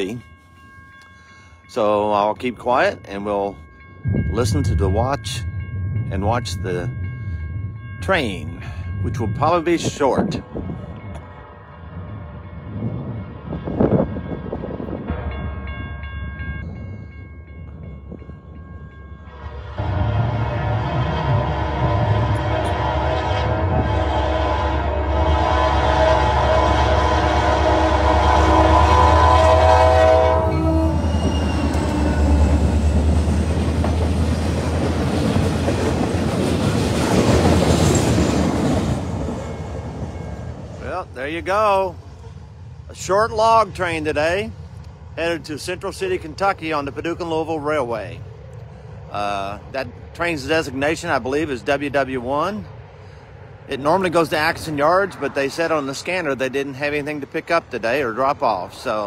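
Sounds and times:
locomotive running past: 0:01.7 - 0:59.0
locomotive horn: 0:19.3 - 0:33.0.

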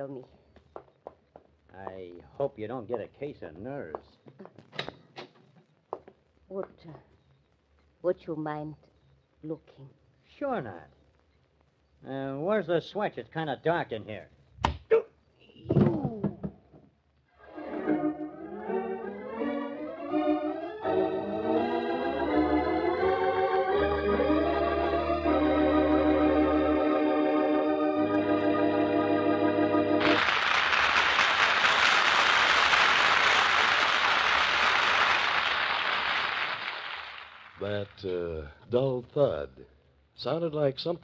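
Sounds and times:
organ chords: 0:17.4 - 0:37.8.

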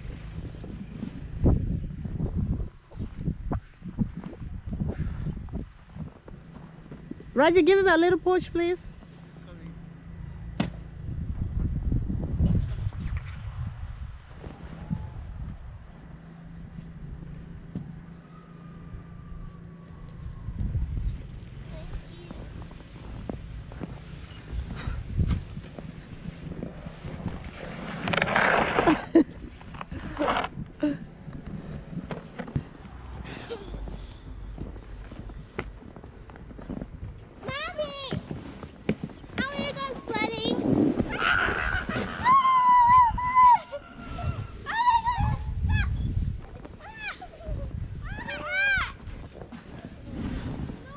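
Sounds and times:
plastic sled scraping over snow: 0:21.4 - 0:33.0, 0:33.9 - 0:43.5, 0:46.3 - 0:50.9.

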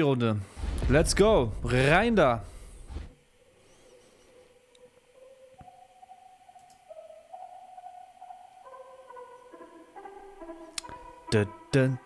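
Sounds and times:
sustained synthesizer notes: 0:04.3 - 0:12.0.

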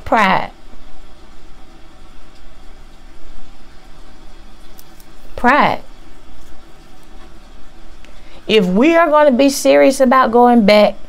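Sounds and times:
background hiss and low hum: 0:00.0 - 0:11.0.

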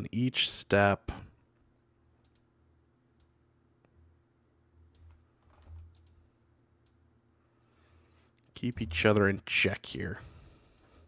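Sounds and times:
low steady hum: 0:00.0 - 0:11.0
keyboard and mouse clicks: 0:02.2 - 0:02.5, 0:04.9 - 0:06.2.

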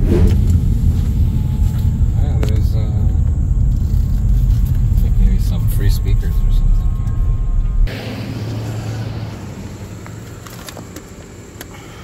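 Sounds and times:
car rumble from inside: 0:00.0 - 0:11.8.

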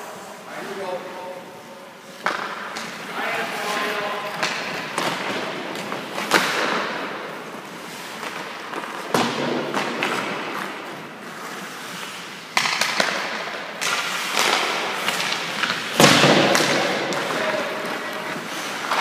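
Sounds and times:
hockey pucks cracking: 0:02.1 - 0:19.0
skate blades scraping ice: 0:02.1 - 0:19.0.

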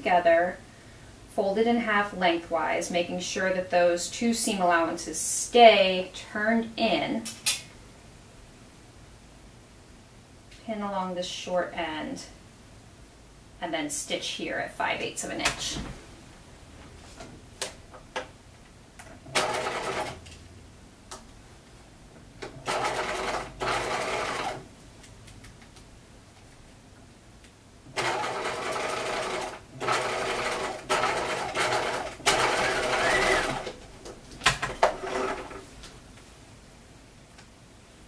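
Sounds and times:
electric sewing machine stitching: 0:19.3 - 0:20.2, 0:22.5 - 0:24.6, 0:27.9 - 0:33.8, 0:34.7 - 0:35.6.

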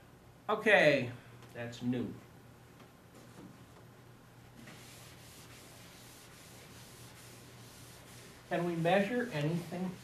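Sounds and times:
eraser rubbing on blackboard: 0:04.6 - 0:10.0.

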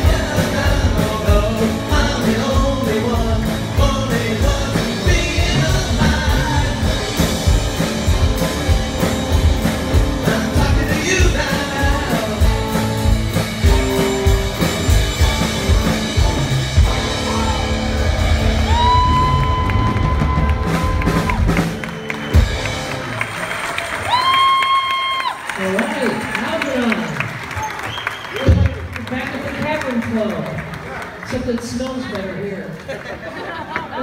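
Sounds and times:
male lead vocal: 0:00.0 - 0:07.6, 0:10.1 - 0:13.2
rock band playing: 0:00.0 - 0:30.4.

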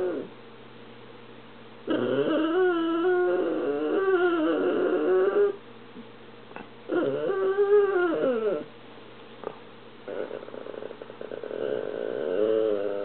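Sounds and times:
dog whining: 0:00.0 - 0:00.3, 0:01.9 - 0:05.6, 0:06.6 - 0:08.7, 0:09.4 - 0:13.0.

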